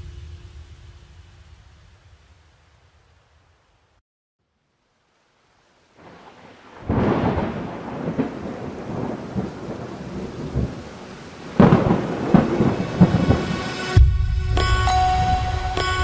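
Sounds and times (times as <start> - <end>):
steady rain: 0.0 - 4.0, 4.6 - 16.0
rolling thunder: 6.0 - 14.6.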